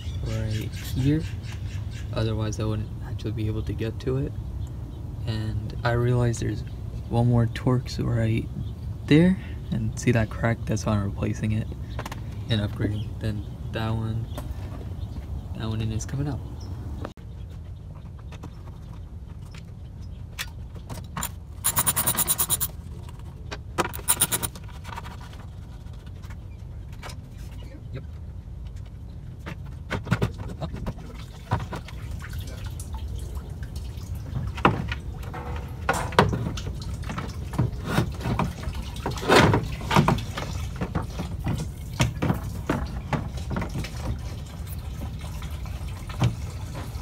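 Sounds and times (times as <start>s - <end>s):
rapid rattling: 21.6s - 22.7s, 23.8s - 24.6s
clicks and knocks: 23.8s - 24.6s.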